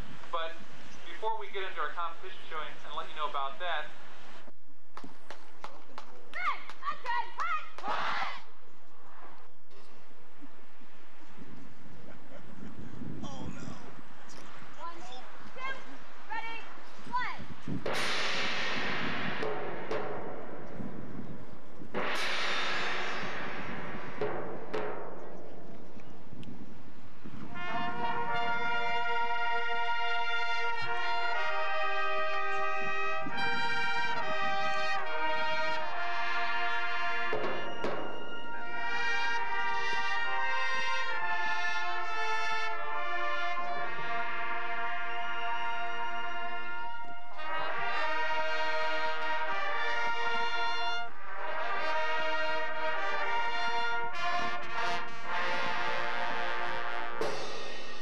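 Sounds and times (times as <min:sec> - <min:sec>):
percussion crash: 0:17.7 - 0:26.4, 0:57.2 - 0:58.0
brass sustained chords: 0:27.2 - 0:58.0.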